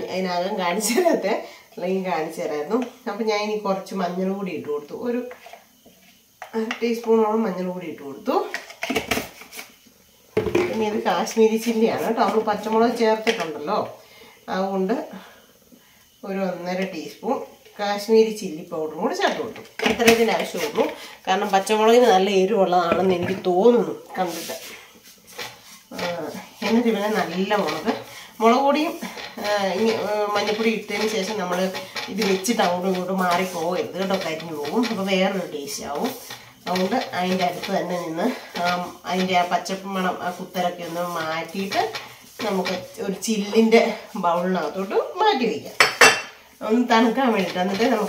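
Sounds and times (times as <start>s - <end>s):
woman speaking: 0.0s - 5.4s, 6.5s - 8.6s, 10.5s - 15.3s, 16.2s - 24.8s, 25.9s - 45.8s, 46.6s - 48.0s
utensil clinking glass bowl: 45.8s - 46.4s.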